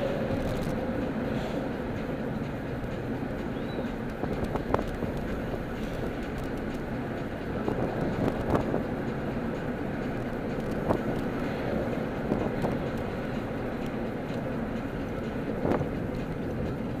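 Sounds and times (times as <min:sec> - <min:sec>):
car cabin road noise hum: 0:00.0 - 0:17.0.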